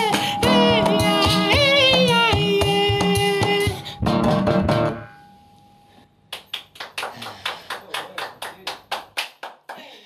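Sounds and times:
sharp hand claps: 6.3s - 10.0s.

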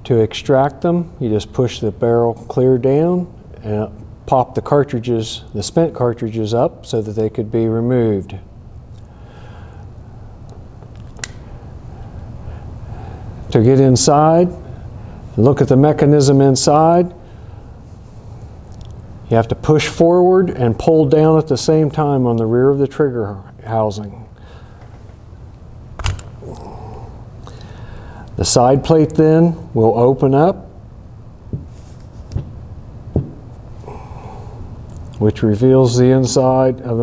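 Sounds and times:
low steady hum: 0.0s - 37.0s
revolver metallic click: 11.0s - 11.4s
faint handling noise: 31.5s - 33.8s.

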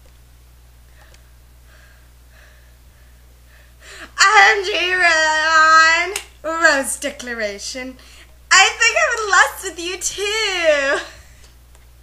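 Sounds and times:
steady low hum: 0.0s - 12.0s
soft breaths: 0.9s - 4.2s, 8.0s - 8.4s.

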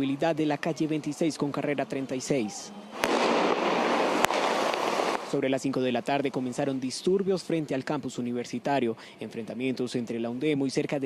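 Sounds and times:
rushing street noise: 0.0s - 11.0s
sharp bang: 3.0s - 5.3s.

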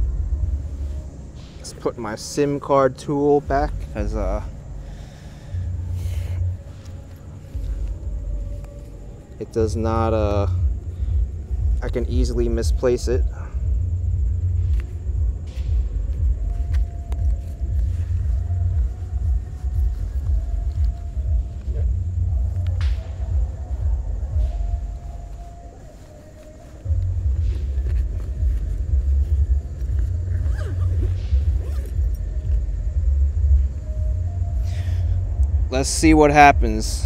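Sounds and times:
wind buffeting microphone: 3.2s - 25.7s, 26.8s - 37.0s.

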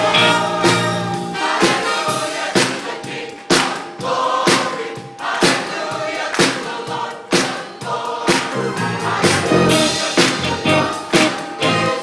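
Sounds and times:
choir singing gospel song: 0.0s - 12.0s
musical accompaniment: 0.0s - 12.0s.

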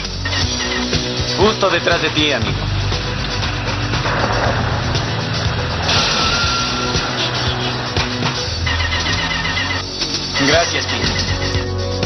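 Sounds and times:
dramatic music: 0.0s - 12.0s
road noise: 0.0s - 12.0s
vehicle engine: 0.0s - 12.0s.

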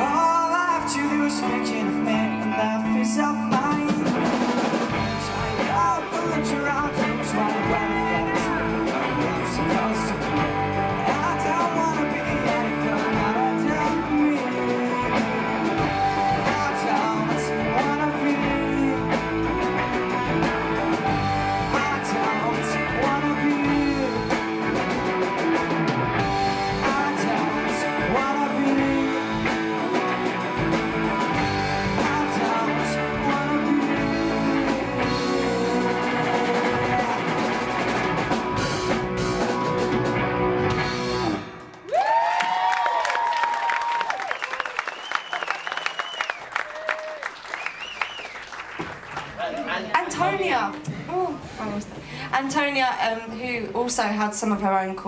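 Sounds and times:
person singing: 0.0s - 25.2s, 26.1s - 38.3s
live rock band playing: 0.0s - 41.8s.

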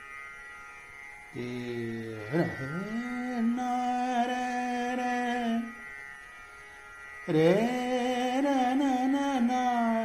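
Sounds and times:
quiet steady drone: 0.0s - 10.0s
man singing a long note: 1.3s - 5.8s, 7.3s - 10.0s.

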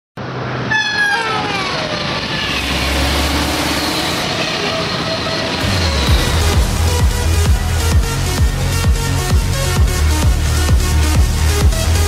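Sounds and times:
train rushing past: 0.2s - 10.6s
train horn: 0.7s - 2.6s
music beat: 4.6s - 12.0s.

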